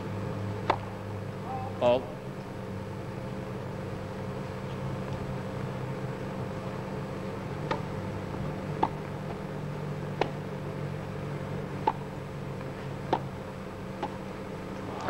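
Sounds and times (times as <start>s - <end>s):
low tape hum and hiss: 0.0s - 15.0s.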